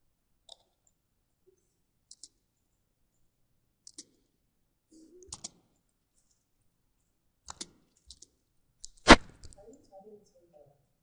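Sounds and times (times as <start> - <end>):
computer mouse clicks: 2.0 - 2.4, 3.8 - 4.3, 5.2 - 5.7, 7.5 - 9.6.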